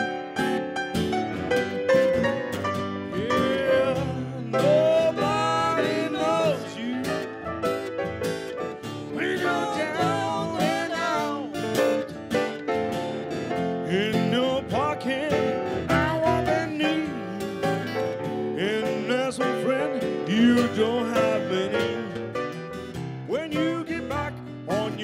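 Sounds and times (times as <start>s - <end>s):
acoustic guitar strummed and picked: 0.0s - 25.0s
grand piano: 0.0s - 25.0s
man singing: 3.1s - 7.6s, 9.0s - 12.0s, 13.8s - 22.4s, 23.2s - 25.0s.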